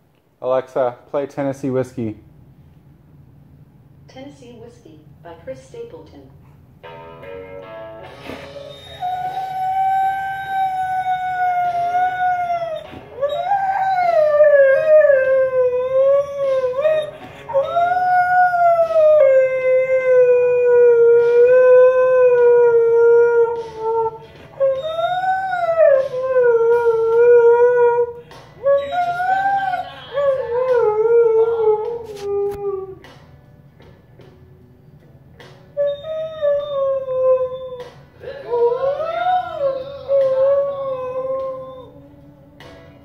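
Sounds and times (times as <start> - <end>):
husky howling: 8.6 - 33.0.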